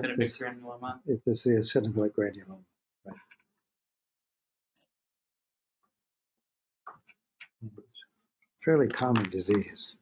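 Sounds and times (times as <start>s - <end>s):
person speaking: 0.0s - 3.3s, 8.6s - 10.0s.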